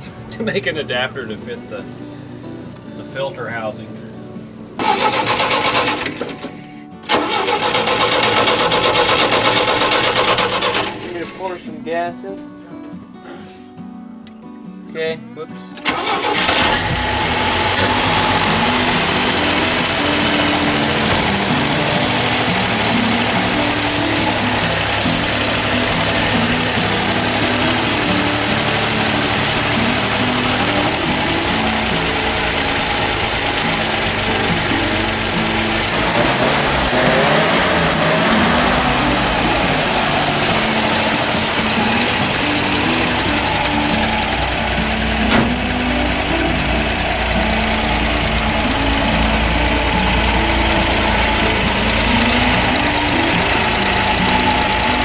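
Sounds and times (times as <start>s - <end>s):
engine running: 4.1s - 11.6s, 15.8s - 55.0s.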